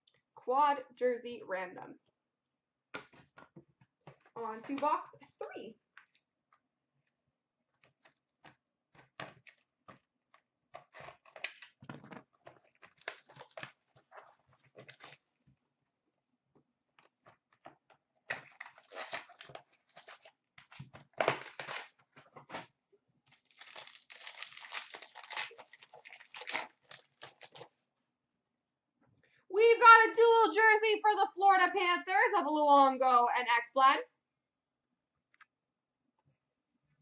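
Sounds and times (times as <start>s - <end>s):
wrappers tearing and crinkling: 10.8s - 11.8s, 12.4s - 15.3s, 18.2s - 22.0s, 23.3s - 27.7s.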